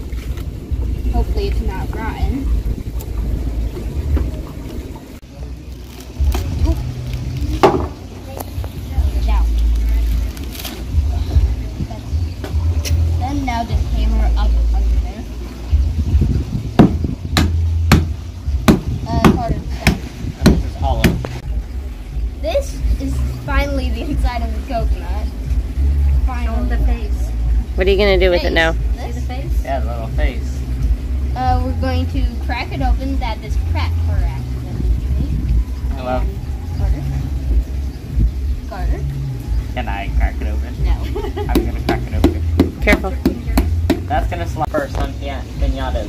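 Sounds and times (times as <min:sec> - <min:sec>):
low rumble: 0:00.0 - 0:46.0
hammer knocking on coconut: 0:07.6 - 0:08.0, 0:16.8 - 0:21.4, 0:41.5 - 0:44.3.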